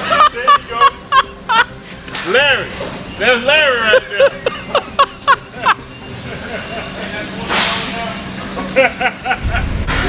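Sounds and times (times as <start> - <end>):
deep low rumble: 9.4 - 10.0.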